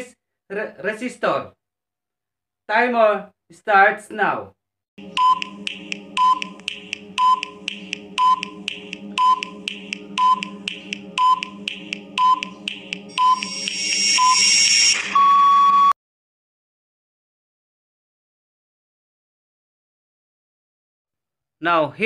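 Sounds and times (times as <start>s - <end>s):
steady low drone: 5.0s - 14.2s
timer ticks with short beeps: 5.2s - 14.4s.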